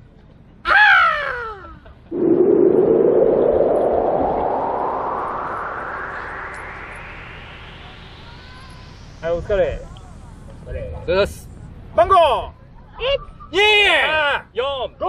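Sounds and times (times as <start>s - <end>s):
rising whoosh sound effect: 2.1s - 10.6s.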